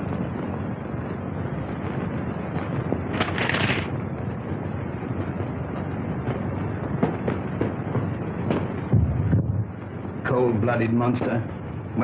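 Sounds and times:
film soundtrack hiss and crackle: 0.0 - 12.0.

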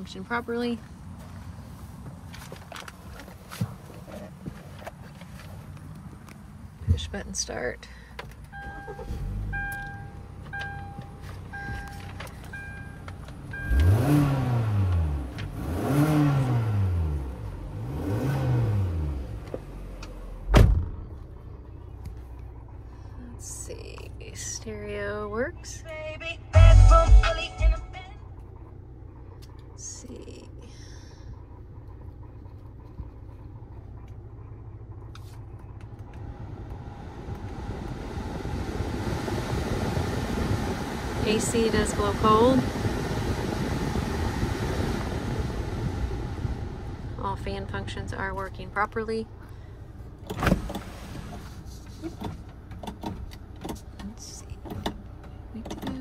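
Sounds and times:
car engine idling: 0.0 - 56.0
car radio playing: 8.4 - 15.1, 23.8 - 30.6, 40.9 - 42.8
warning chime beeping: 8.5 - 14.2
car engine revving: 13.3 - 21.9, 33.9 - 53.6
sharp thump: 20.5 - 21.1.

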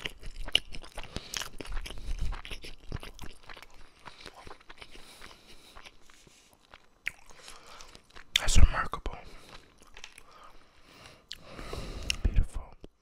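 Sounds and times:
wet chewing sounds: 0.0 - 8.6, 9.2 - 13.0
muffled breath on microphone: 10.3 - 12.4.

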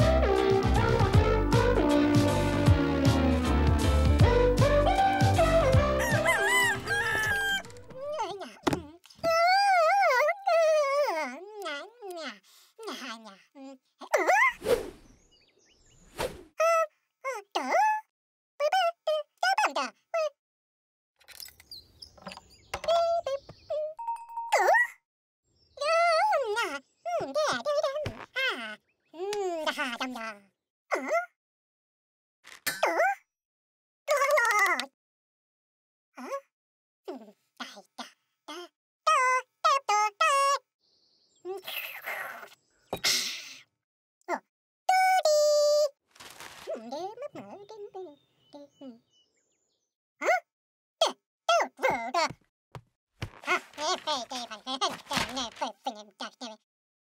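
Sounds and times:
cartoon character wavering cry: 9.3 - 12.0.

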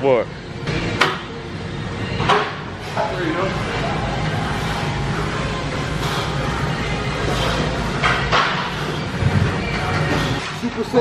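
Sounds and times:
man breathing with effort: 3.9 - 10.6.

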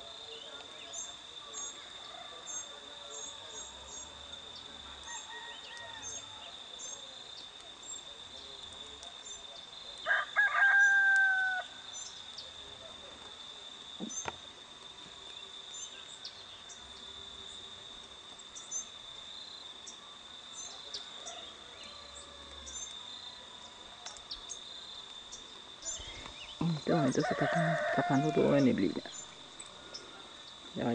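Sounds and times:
high insect drone: 0.0 - 30.9
rooster crowing: 1.6 - 3.8, 4.8 - 6.8, 10.0 - 11.9, 21.0 - 24.0, 26.7 - 29.1.

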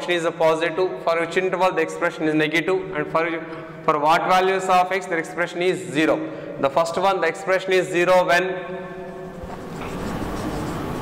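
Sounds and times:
marker scratching on whiteboard: 9.4 - 11.0.

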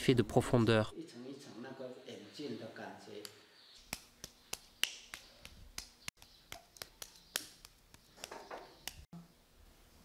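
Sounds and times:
hands patting clay: 3.8 - 9.1.

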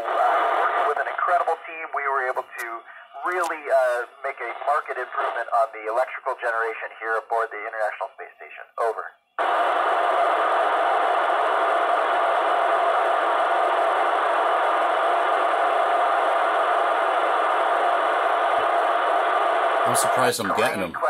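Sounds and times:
radio static hiss: 0.0 - 21.0.

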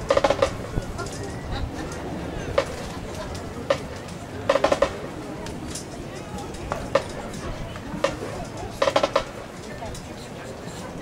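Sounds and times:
sharp percussion taps: 0.0 - 0.6, 3.7 - 5.0, 8.0 - 9.5
background chatter: 0.0 - 11.0.

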